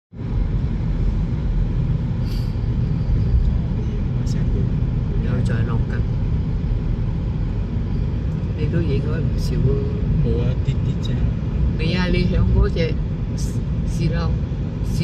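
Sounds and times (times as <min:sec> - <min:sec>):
car driving on snowy road: 0:00.2 - 0:15.0.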